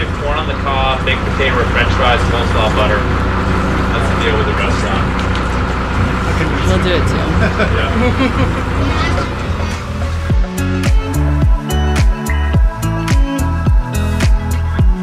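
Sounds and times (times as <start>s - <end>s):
people talking: 0.0s - 5.2s, 6.0s - 9.4s
boat engine running: 0.0s - 15.0s.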